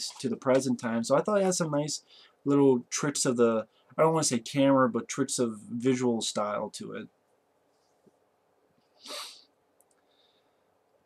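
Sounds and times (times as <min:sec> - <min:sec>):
man's hissing breath burst: 0:09.0 - 0:09.5.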